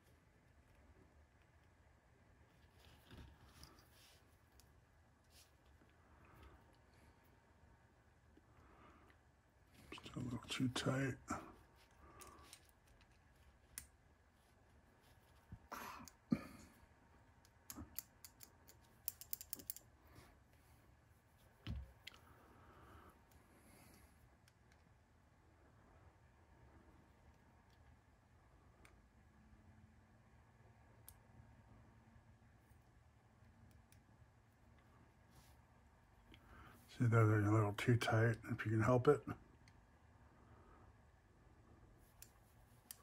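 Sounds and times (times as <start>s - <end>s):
clicks and taps of small parts: 17.4s - 19.8s.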